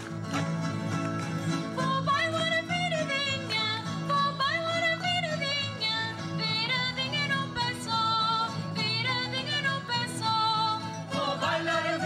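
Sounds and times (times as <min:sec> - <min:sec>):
strummed guitars: 0:00.0 - 0:12.0.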